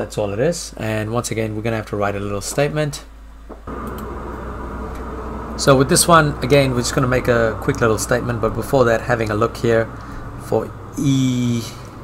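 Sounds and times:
low hum and rumble: 0.4 - 12.0.

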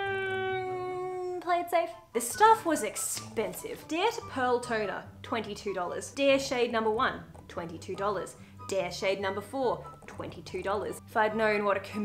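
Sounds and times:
woman humming hesitantly: 0.0 - 1.4.

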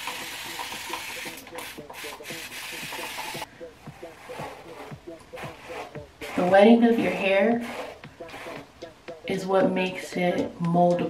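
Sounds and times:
spray bottle misting water: 0.0 - 3.4.

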